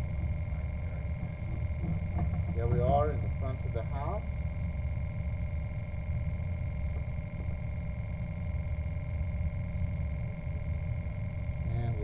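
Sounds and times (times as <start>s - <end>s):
high electrical whine and hum: 0.0s - 12.0s
steady low rumble: 0.0s - 12.0s.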